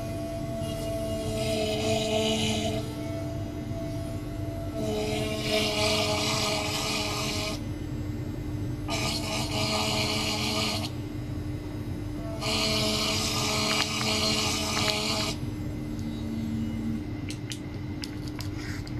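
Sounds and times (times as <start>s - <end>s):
high buzzing hiss with whine: 0.0s - 18.9s
steady low hum: 0.0s - 18.9s.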